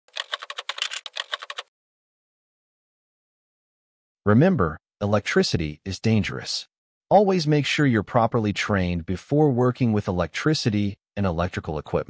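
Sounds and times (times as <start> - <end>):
keyboard key clicks: 0.1 - 1.7.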